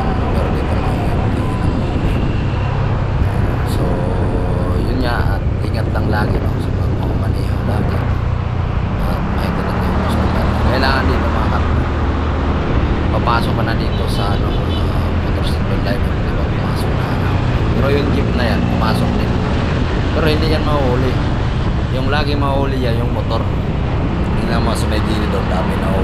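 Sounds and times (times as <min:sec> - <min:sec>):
wind and road noise: 0:00.0 - 0:26.0.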